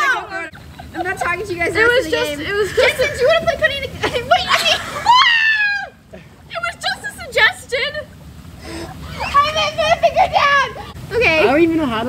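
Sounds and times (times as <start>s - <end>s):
young person talking: 0.0s - 4.8s
hot tub jets bubbling: 0.0s - 12.0s.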